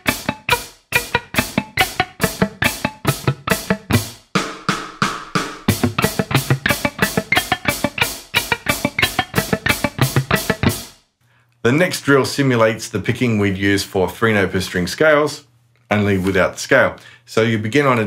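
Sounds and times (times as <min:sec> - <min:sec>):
electric guitar picking: 0:00.0 - 0:04.1, 0:05.3 - 0:10.9
drum beat: 0:00.0 - 0:11.0.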